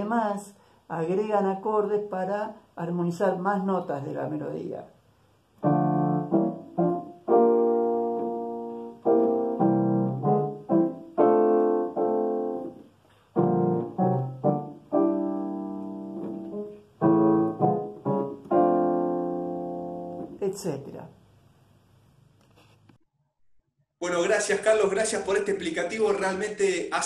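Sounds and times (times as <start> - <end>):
digital piano block chords: 5.6 - 20.4.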